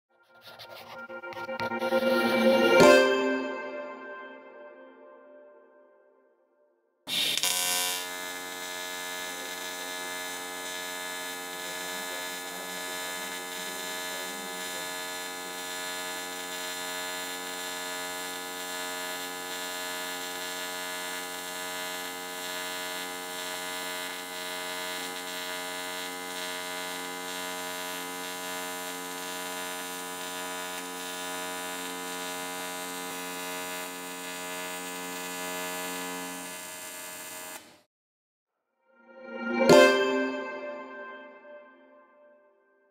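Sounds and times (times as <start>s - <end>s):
welding arc buzzing hum: 7.1s - 37.9s.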